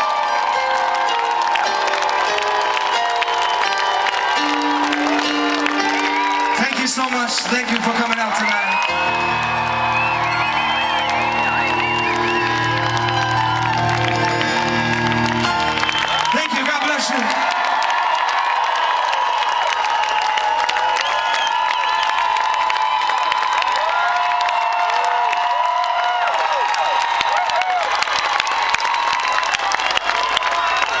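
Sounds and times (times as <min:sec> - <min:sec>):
high-pitched screams and whoops: 0:00.0 - 0:06.9, 0:07.8 - 0:31.0
crowd cheering and applauding: 0:00.0 - 0:31.0.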